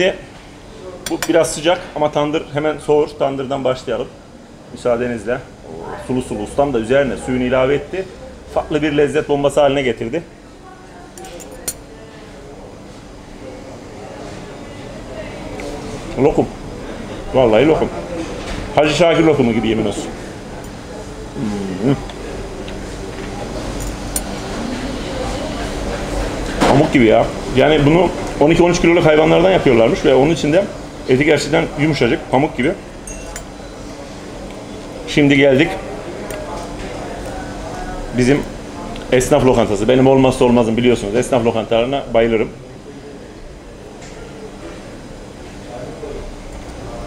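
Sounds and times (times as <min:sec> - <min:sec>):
restaurant room noise: 0:00.0 - 0:47.0
fork clinking on plate: 0:33.1 - 0:33.6.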